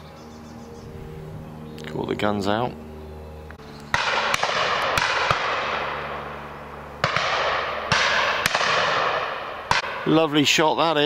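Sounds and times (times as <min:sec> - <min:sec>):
shotgun shots echoing: 0:03.9 - 0:10.4.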